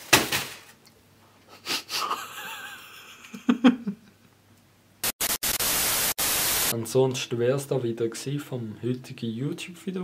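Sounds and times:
man's wheezing laugh: 0:01.5 - 0:04.2.

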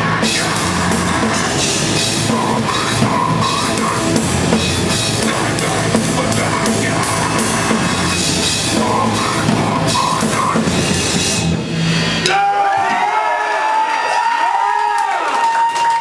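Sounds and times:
metal band playing live: 0:00.0 - 0:13.1.

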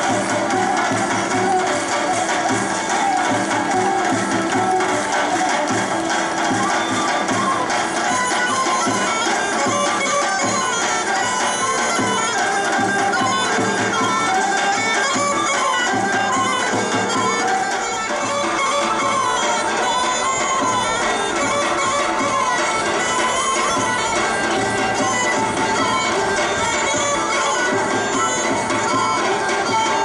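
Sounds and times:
reedy wind melody: 0:00.0 - 0:30.0.

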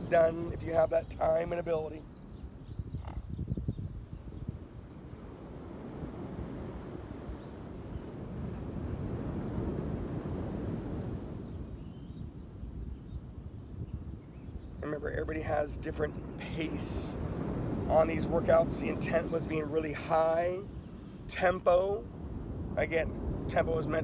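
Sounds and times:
wind: 0:00.0 - 0:24.0
surf: 0:04.7 - 0:11.8, 0:14.7 - 0:24.0.

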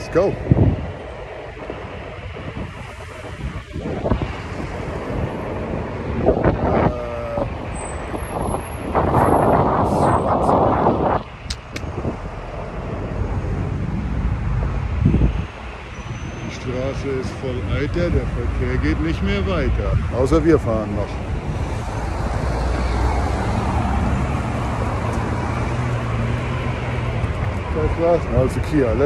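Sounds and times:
road traffic passing: 0:00.0 - 0:29.0
wind buffeting microphone: 0:00.0 - 0:29.0.

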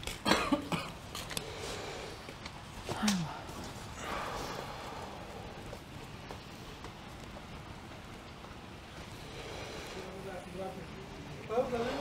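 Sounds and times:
person coughing: 0:00.2 - 0:01.0.

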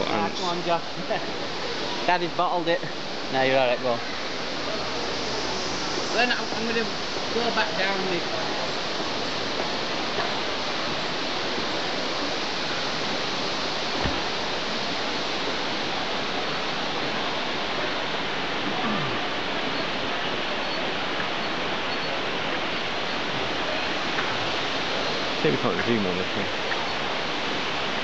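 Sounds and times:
steady rushing noise: 0:00.0 - 0:28.0
low thump: 0:14.0 - 0:14.3.

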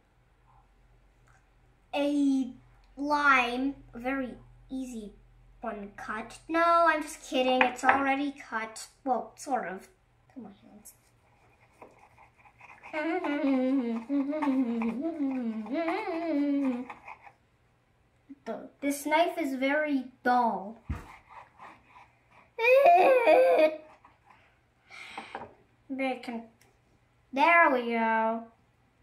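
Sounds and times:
girl's wavering vocal sound: 0:12.9 - 0:16.9, 0:22.6 - 0:23.8.

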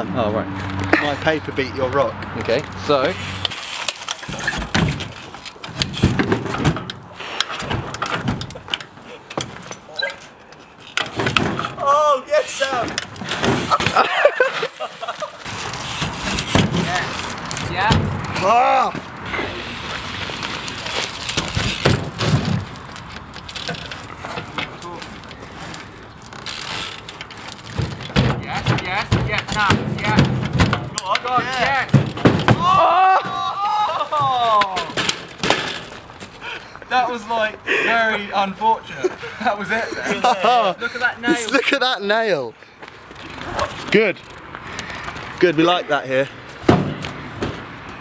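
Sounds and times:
bike tyres landing on sheet metal: 0:04.1 - 0:08.7, 0:11.0 - 0:11.8, 0:15.9 - 0:19.0, 0:21.1 - 0:22.8, 0:27.6 - 0:33.6, 0:34.2 - 0:36.0, 0:46.6 - 0:47.7
people calling out: 0:32.6 - 0:35.0.

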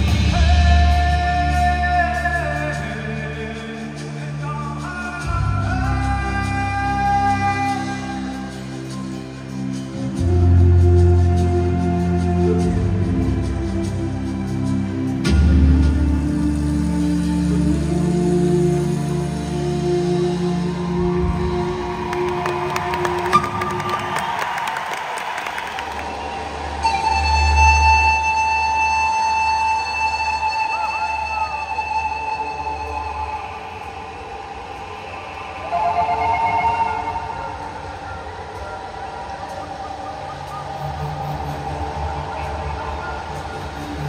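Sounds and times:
pan flute melody: 0:00.0 - 0:44.0.

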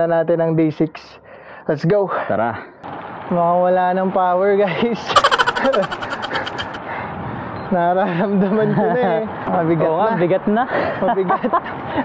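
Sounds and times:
man laughing: 0:05.1 - 0:06.8.

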